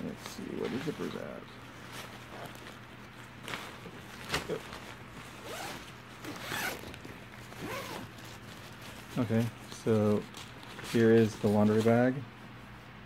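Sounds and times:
zipper being pulled open: 0:05.3 - 0:08.9.

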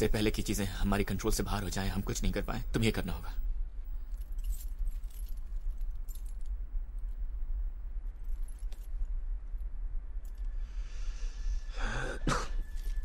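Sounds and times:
steady low rumble: 0:00.0 - 0:13.0
chain links clinking: 0:03.8 - 0:10.5, 0:12.6 - 0:13.0.

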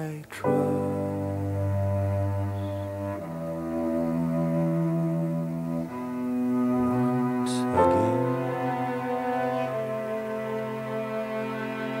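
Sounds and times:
bowed strings sustained notes: 0:00.0 - 0:12.0.

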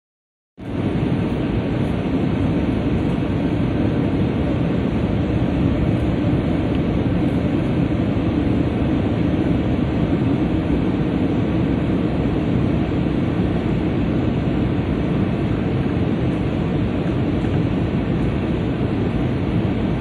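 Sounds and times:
airliner cabin engine rumble: 0:00.6 - 0:20.0.

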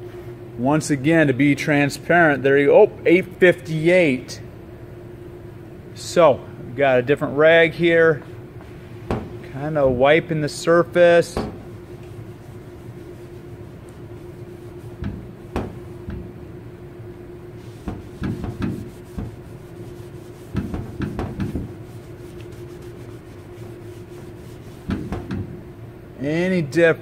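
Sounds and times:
steady background hum: 0:00.0 - 0:27.0
cloth rag rubbing car panel: 0:11.4 - 0:16.1, 0:17.5 - 0:25.5
hand knocking on panel: 0:15.0 - 0:16.3, 0:17.8 - 0:19.4, 0:20.5 - 0:21.8.

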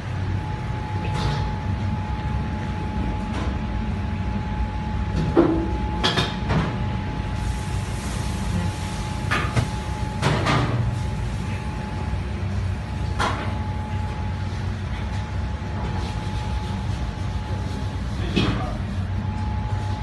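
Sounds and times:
faint constant whine: 0:00.0 - 0:20.0
low machinery hum: 0:00.0 - 0:20.0.

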